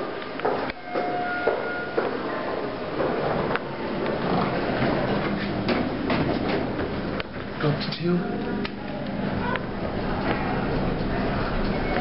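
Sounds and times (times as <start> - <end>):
elevator doors sliding open: 0.0 - 8.0, 8.8 - 12.0
two-note elevator chime: 8.0 - 9.4.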